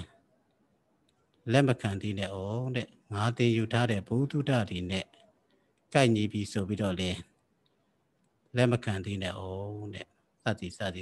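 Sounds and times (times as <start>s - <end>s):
man speaking: 0.0s - 0.2s, 1.4s - 5.3s, 5.9s - 7.4s, 8.5s - 11.0s.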